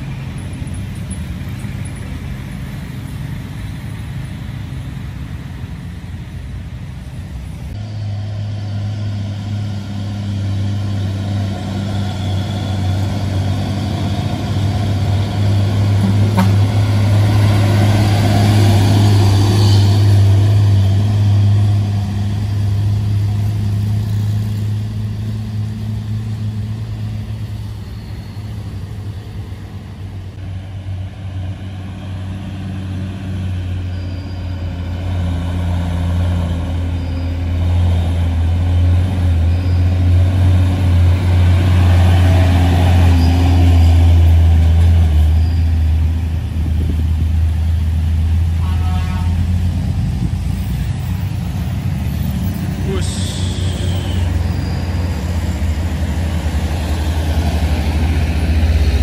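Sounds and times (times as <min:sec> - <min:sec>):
truck diesel engines labouring uphill: 0:00.0 - 0:59.0.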